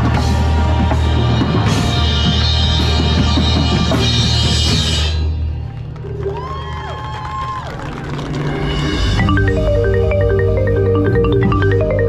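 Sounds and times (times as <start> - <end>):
drum corps ensemble with cymbals: 0.0 - 5.4.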